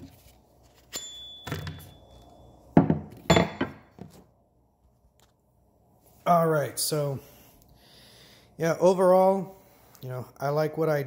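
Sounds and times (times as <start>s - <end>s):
knocks on wooden tabletop: 2.8s - 4.1s.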